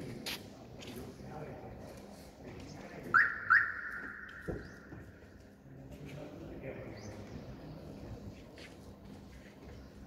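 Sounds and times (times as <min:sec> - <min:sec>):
shrill whistle-like tone: 0:03.2 - 0:04.8.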